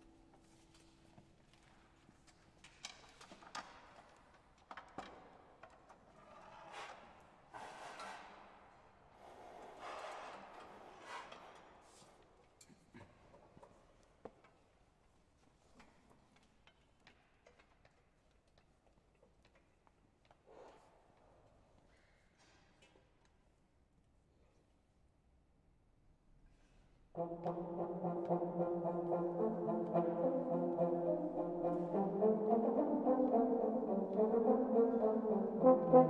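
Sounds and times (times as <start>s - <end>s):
brass held note: 27.2s - 36.0s.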